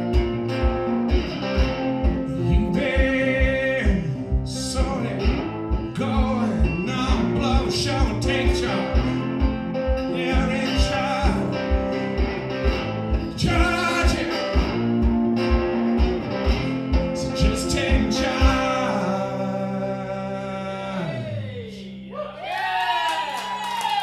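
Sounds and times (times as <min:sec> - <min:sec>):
slide guitar blues: 0:00.0 - 0:22.1.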